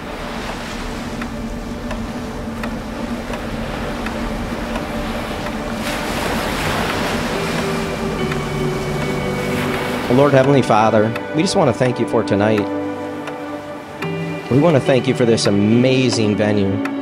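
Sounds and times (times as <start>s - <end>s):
ocean surf washing: 0.0s - 17.0s
soft held musical tones: 0.0s - 17.0s.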